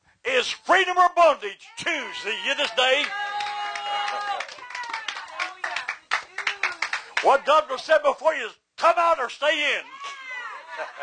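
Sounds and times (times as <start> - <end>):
hands clapping: 2.8 - 7.5.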